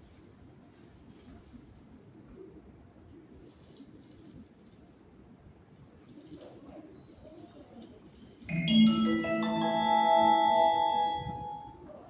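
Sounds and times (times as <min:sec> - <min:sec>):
station ambience: 0:08.5 - 0:12.0.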